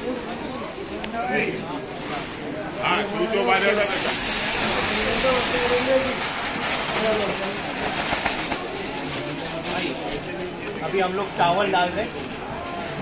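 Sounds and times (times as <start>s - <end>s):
rice grains pouring: 2.3s - 8.5s.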